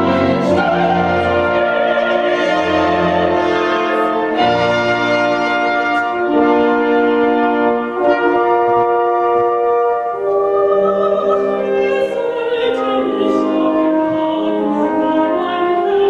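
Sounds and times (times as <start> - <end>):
soprano singing: 0.0 - 5.5, 8.9 - 16.0
orchestra playing slow chords: 0.0 - 16.0.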